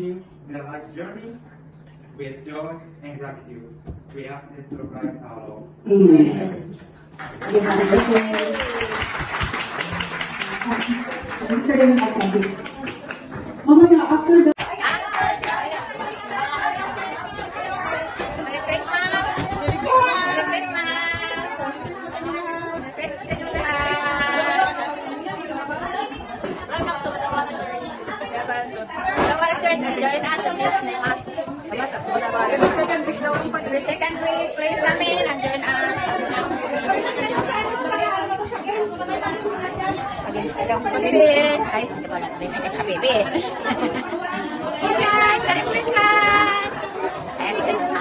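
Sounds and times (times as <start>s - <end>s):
people chattering: 5.9s - 48.0s.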